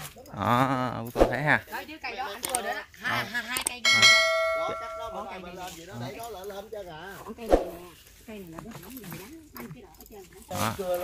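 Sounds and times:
notification bell ding: 0:03.8 - 0:05.4.

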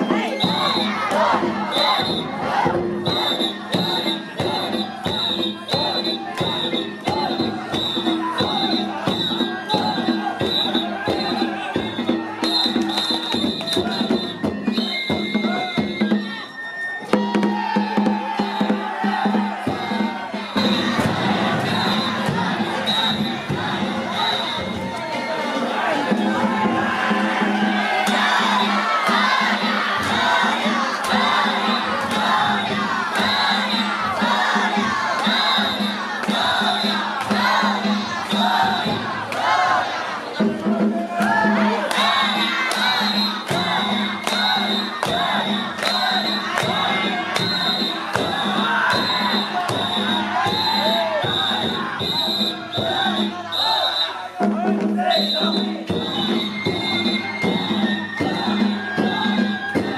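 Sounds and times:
crowd shouting and chanting: 0:00.0 - 0:59.9
drum and bell beat: 0:00.0 - 0:59.9.

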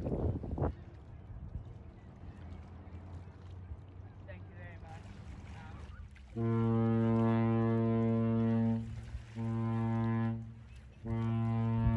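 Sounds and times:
deep ship horn blasts: 0:05.0 - 0:11.9.

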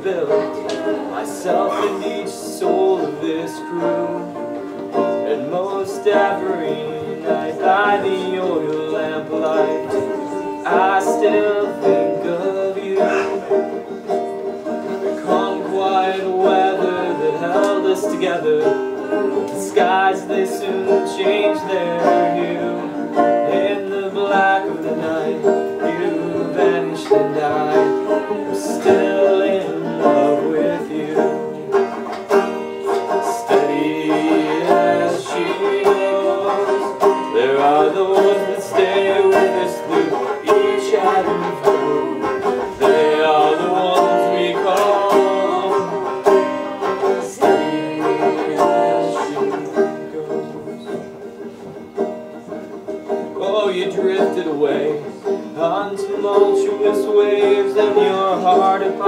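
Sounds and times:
banjo picking: 0:00.0 - 0:59.0
person singing folk song: 0:00.0 - 0:59.0.

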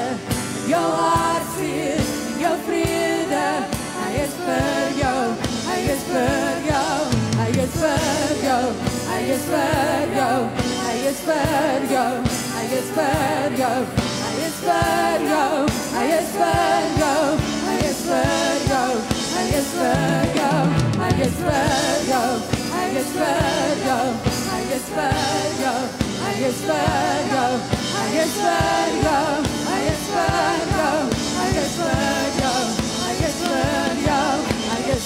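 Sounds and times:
women singing: 0:00.0 - 0:35.0
band playing: 0:00.2 - 0:35.0
drum kit beat: 0:02.9 - 0:09.9, 0:14.0 - 0:35.0.

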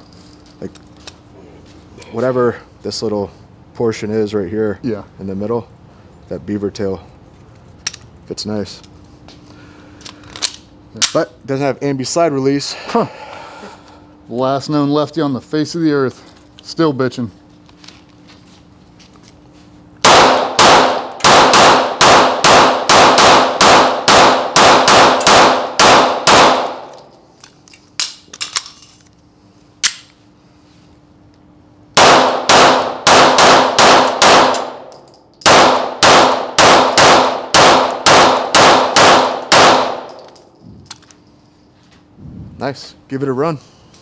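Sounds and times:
pistol shots echoing: 0:20.0 - 0:27.0, 0:32.0 - 0:40.2.

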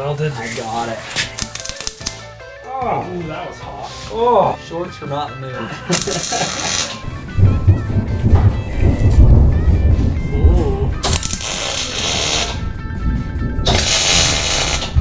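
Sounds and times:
welder crackling: 0:00.0 - 0:02.4, 0:05.8 - 0:09.2, 0:09.9 - 0:13.0, 0:13.6 - 0:15.0
background music: 0:00.0 - 0:15.0
people laughing: 0:05.5 - 0:07.2.

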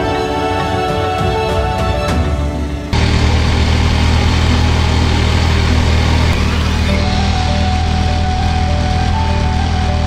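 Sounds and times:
road and wind noise: 0:02.8 - 0:10.0
motorcycle engine running: 0:02.9 - 0:10.0.

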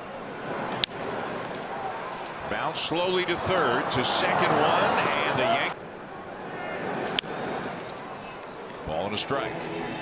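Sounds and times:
ballpark crowd noise: 0:00.0 - 0:10.0.

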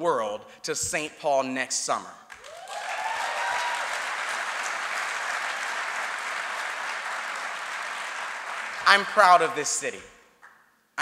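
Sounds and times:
audience applauding: 0:02.3 - 0:09.5.

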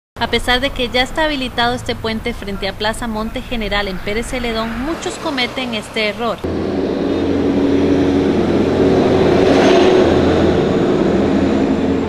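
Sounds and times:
vehicle engine running: 0:00.2 - 0:12.0
vehicle passing: 0:00.2 - 0:12.0.

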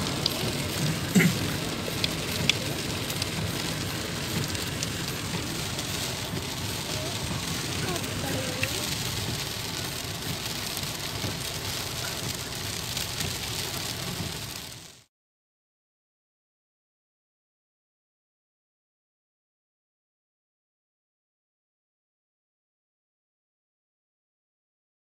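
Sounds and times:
rain drumming on car roof: 0:00.0 - 0:15.1
wet road noise: 0:00.0 - 0:15.1.

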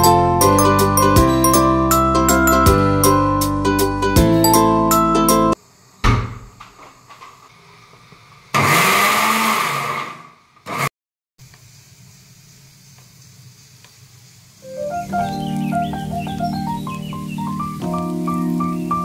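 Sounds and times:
thunk: 0:06.0 - 0:06.8
mixer grinder motor blending: 0:08.6 - 0:10.9.

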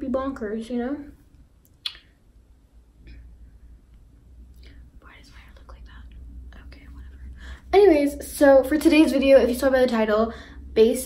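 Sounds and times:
woman whispering: 0:05.0 - 0:07.4.

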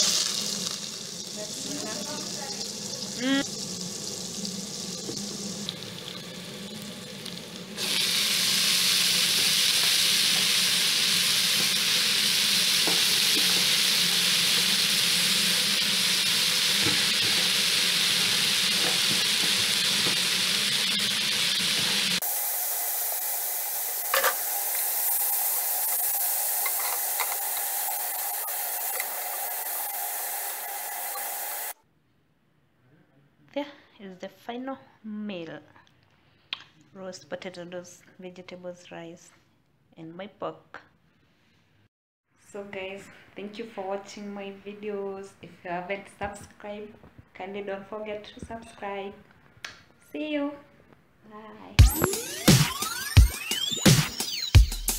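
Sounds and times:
food sizzling in oil: 0:00.0 - 0:31.8.

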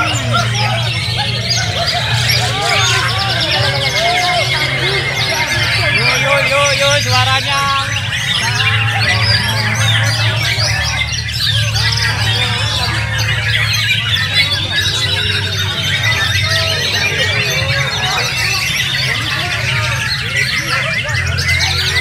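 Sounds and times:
chorus of songbirds: 0:00.0 - 0:22.0
songbird singing: 0:00.0 - 0:22.0
steady low hum: 0:00.0 - 0:22.0.

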